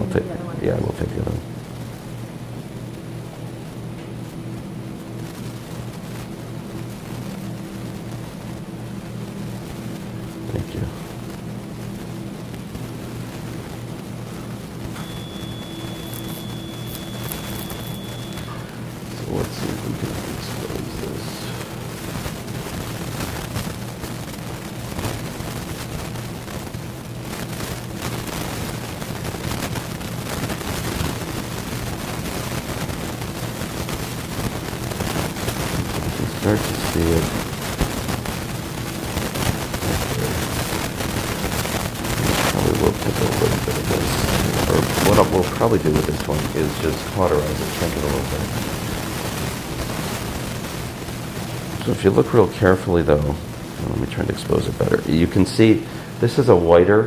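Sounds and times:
electrical equipment hum: 0.0 - 57.0.

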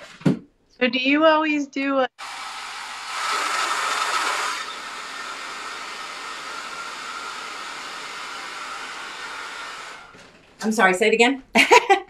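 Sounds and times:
hair dryer blowing: 2.2 - 10.2.

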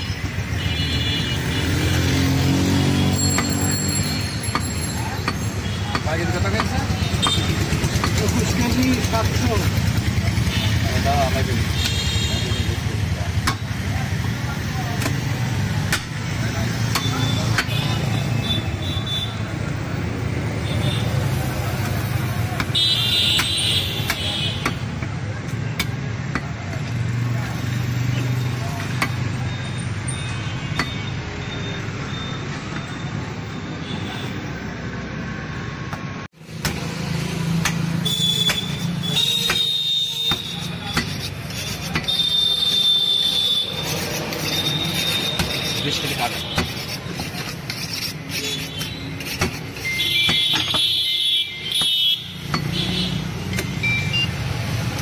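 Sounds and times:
street traffic rumble: 0.0 - 55.0
cleaver striking wooden block: 3.2 - 8.9, 13.4 - 13.7, 14.9 - 16.2, 21.8 - 27.0, 28.2 - 29.2, 35.9 - 42.8, 43.7 - 50.9, 51.7 - 53.8
people talking: 8.0 - 18.5, 45.1 - 47.6.

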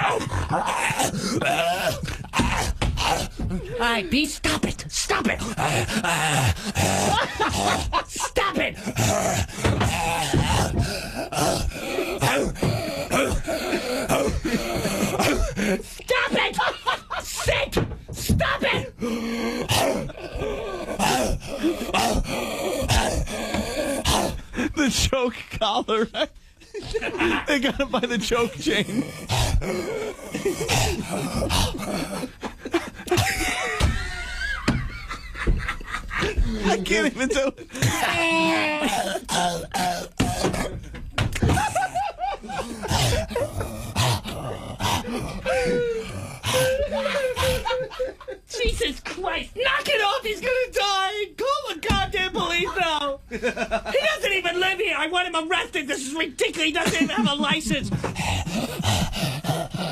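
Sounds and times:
man imitating barking dog: 0.0 - 3.3
man whining cry: 0.0 - 3.8, 36.3 - 40.8, 41.4 - 48.4
man imitating dog barks and snarls: 0.0 - 25.6, 27.4 - 33.9, 36.3 - 41.6, 42.5 - 47.8, 56.9 - 59.9.

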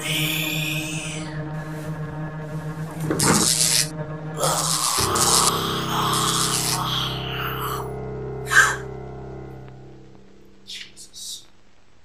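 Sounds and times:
low drone score: 0.0 - 10.7.

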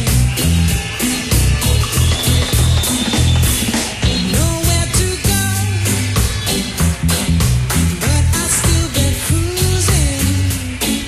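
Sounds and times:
heavy bass line: 0.0 - 11.0
live band playing reggae: 0.0 - 11.0
steady drum beat: 0.0 - 11.0.

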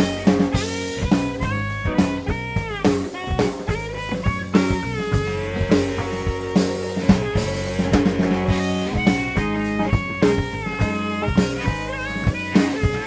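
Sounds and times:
bass guitar: 0.0 - 13.0
drum kit steady beat: 0.0 - 13.0
electric guitar bending notes: 0.0 - 13.0.

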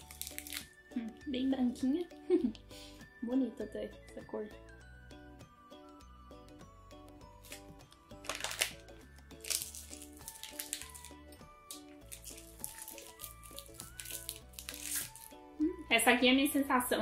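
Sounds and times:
light background music: 0.0 - 17.0.

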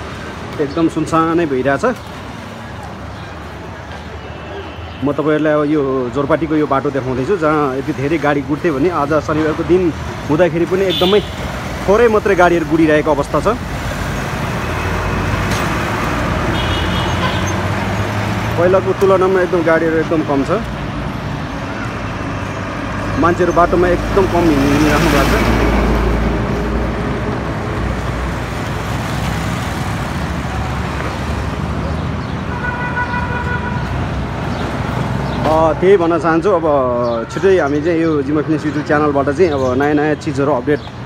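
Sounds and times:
road noise: 0.0 - 41.0
vehicles passing: 0.0 - 41.0
vehicle horn: 10.9 - 11.5, 16.5 - 17.6, 32.5 - 33.9.

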